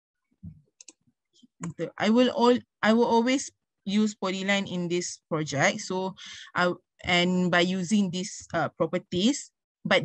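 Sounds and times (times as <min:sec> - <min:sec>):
computer mouse clicks: 0:00.4 - 0:01.8
person speaking: 0:01.6 - 0:10.0.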